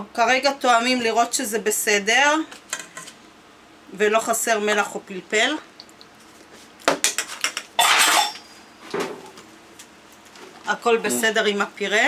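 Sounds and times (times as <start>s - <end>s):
spoon scraping metal bowl: 7.8s - 8.5s.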